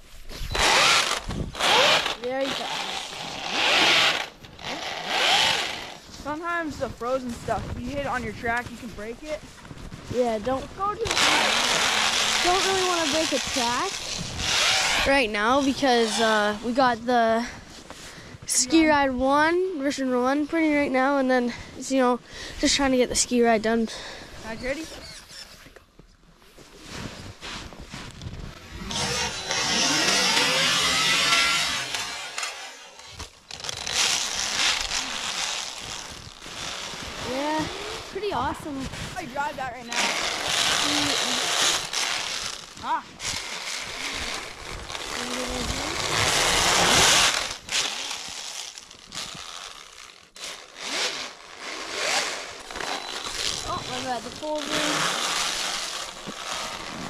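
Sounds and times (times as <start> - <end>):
rc snowmobile motor and track: 0.3 - 9.4, 10.1 - 17.6, 24.4 - 25.7, 28.4 - 57.0.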